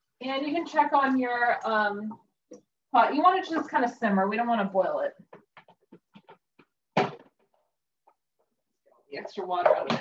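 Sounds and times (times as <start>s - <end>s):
plastic bowl knocks and clatters: 5.3s - 7.6s.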